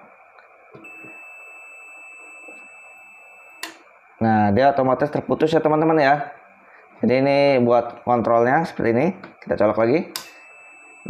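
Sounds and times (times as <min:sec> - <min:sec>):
multimeter continuity beep: 0:00.0 - 0:11.0.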